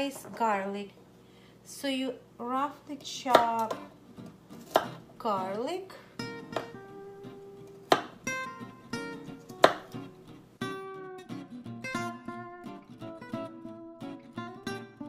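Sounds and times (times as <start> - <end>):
acoustic guitar music: 3.6 - 15.0
knife chopping on cutting board: 4.6 - 5.0, 6.5 - 6.8, 7.9 - 8.2, 9.6 - 10.0.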